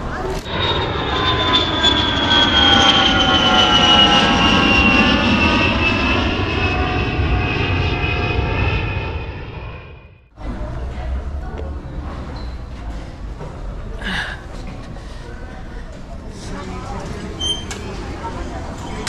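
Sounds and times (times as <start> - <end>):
jet engines whining: 0.0 - 10.3.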